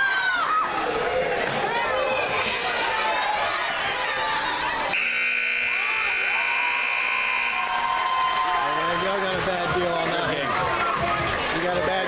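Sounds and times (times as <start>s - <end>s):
crowd voices: 0.0s - 12.0s
scoreboard buzzer: 4.9s - 8.0s.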